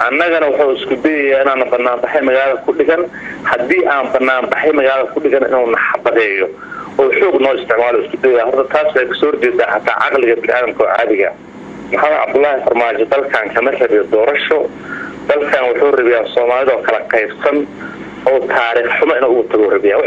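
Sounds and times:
man talking: 0:00.0 - 0:20.0.

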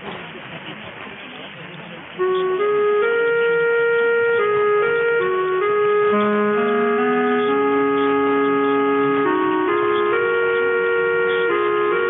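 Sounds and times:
sustained chords over am radio: 0:02.2 - 0:12.0.

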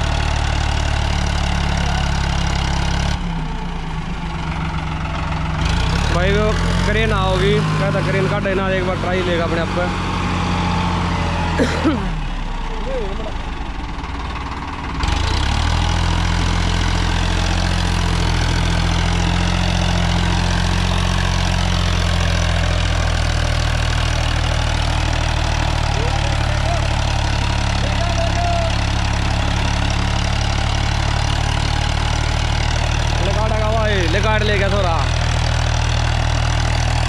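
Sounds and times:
tractor diesel engine labouring: 0:00.0 - 0:37.0.

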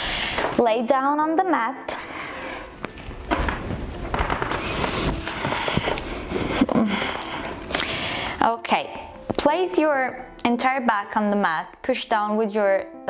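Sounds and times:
rustling on yoga mat: 0:02.8 - 0:06.7.

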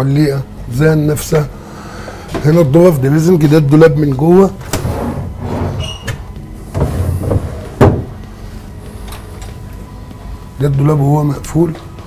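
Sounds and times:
wooden drawer sliding shut: 0:04.7 - 0:08.1.

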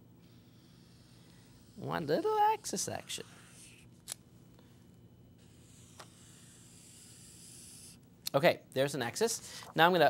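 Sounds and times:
marker hissing on surface: 0:00.2 - 0:03.9, 0:05.4 - 0:08.0.

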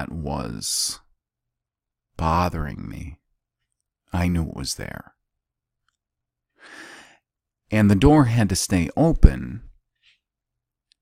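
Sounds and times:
man breathing: 0:06.5 - 0:07.3.

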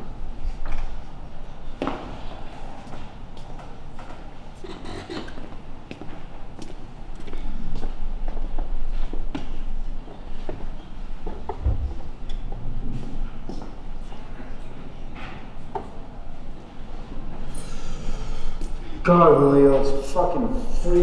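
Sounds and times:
footsteps on wooden stage: 0:05.9 - 0:13.8
low rumble: 0:11.6 - 0:14.0.

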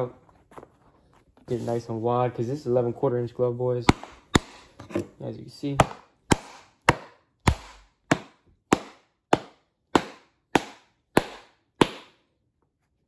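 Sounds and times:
mallet pounding leather glove: 0:03.8 - 0:04.7, 0:05.7 - 0:12.2.

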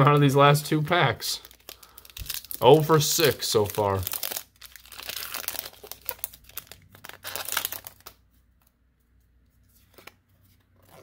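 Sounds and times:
foil wrapper crinkling: 0:01.4 - 0:08.2.

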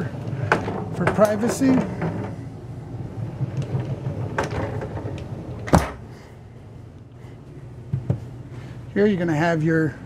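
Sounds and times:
pocket door sliding in track: 0:03.0 - 0:06.0.

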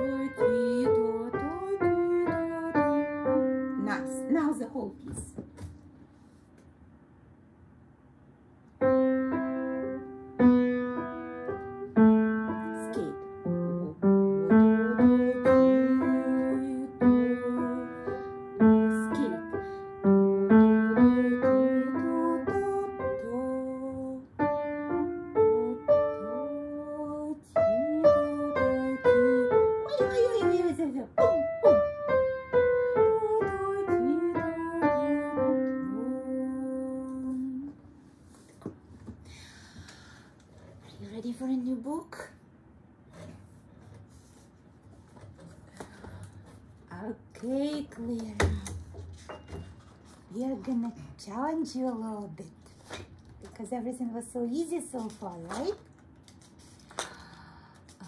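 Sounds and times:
upright piano melody: 0:00.0 - 0:05.2, 0:08.8 - 0:26.9, 0:27.5 - 0:36.2.

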